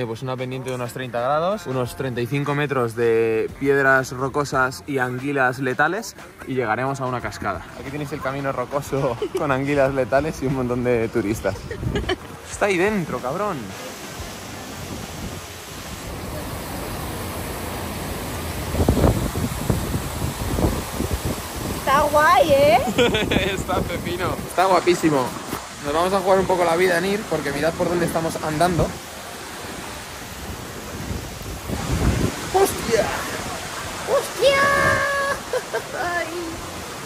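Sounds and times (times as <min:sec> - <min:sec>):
waterfall rushing: 0:00.0 - 0:37.0
wind buffeting microphone: 0:10.1 - 0:13.0, 0:14.1 - 0:26.7, 0:29.9 - 0:35.4.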